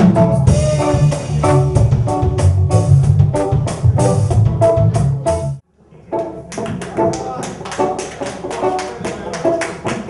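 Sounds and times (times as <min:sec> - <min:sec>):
keyboard chords: 0:00.0 - 0:08.0
reggae band playing: 0:00.0 - 0:10.0.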